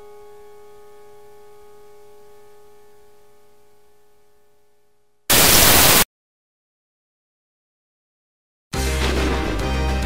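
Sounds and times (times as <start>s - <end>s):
burst of static hiss: 5.3s - 6.1s.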